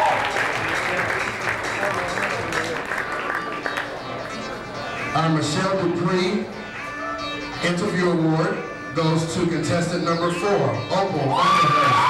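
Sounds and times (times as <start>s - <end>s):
audience applauding: 0.0s - 4.2s
voices: 0.0s - 12.0s.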